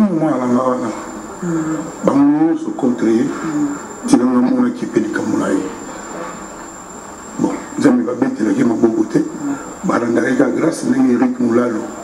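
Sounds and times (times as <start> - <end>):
room noise: 0.0 - 12.0
man speaking into microphones: 2.0 - 5.8, 7.4 - 12.0.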